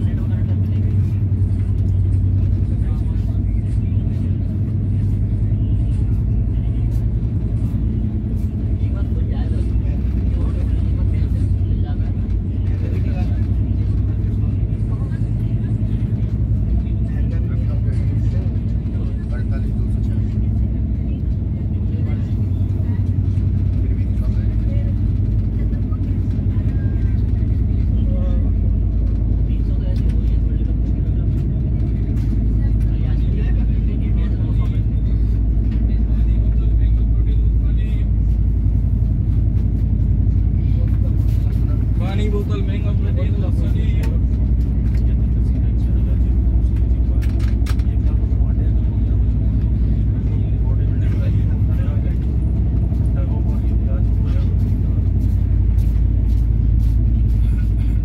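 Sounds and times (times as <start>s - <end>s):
train wheels rumbling on track: 0.0s - 58.0s.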